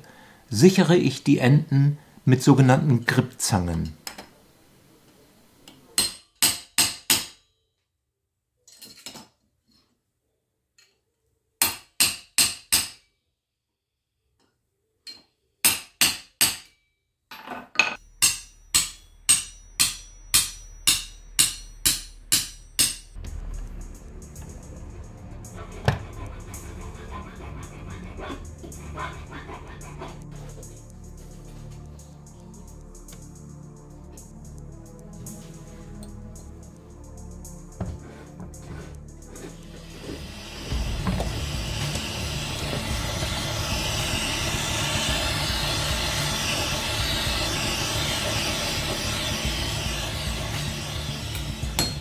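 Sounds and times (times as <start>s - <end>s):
hammer striking steel punch: 17.9s - 23.2s, 51.3s - 52.0s
background music: 18.0s - 52.0s.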